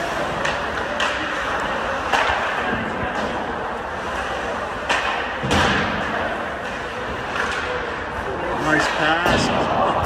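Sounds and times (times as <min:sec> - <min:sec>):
hockey game noise: 0:00.0 - 0:10.0.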